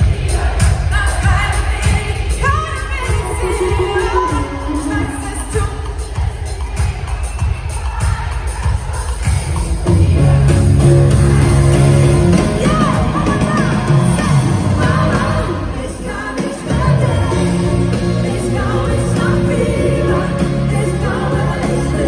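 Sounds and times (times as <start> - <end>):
concert crowd: 0.0 - 22.0.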